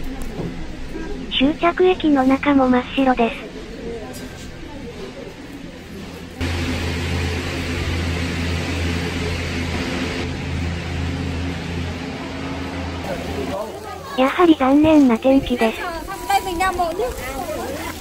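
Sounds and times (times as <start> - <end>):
murmur of voices: 0.0 - 10.3, 11.2 - 18.0
low machine hum: 4.6 - 15.8
loud hiss: 6.4 - 10.3.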